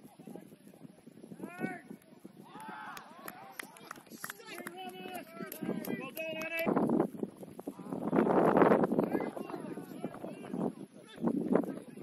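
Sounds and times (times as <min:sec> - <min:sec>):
faint background voices: 0:07.6 - 0:12.0.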